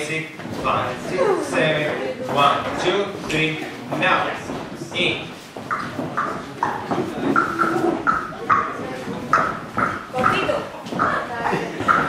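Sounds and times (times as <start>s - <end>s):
voices in room: 0.0s - 12.0s
footsteps on wooden floor: 0.3s - 12.0s.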